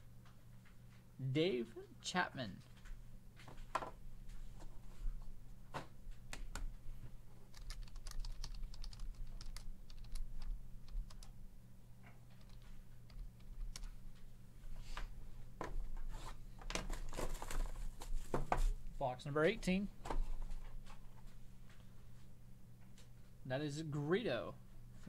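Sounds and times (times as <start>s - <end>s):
rustling handling noise: 13.9s - 22.4s.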